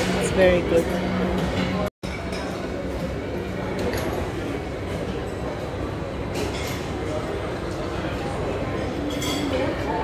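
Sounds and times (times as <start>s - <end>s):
restaurant room noise: 0.0s - 10.0s.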